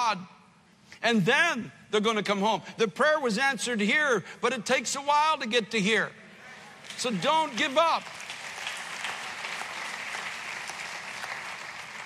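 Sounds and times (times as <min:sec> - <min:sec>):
congregation applauding: 0:06.6 - 0:12.0.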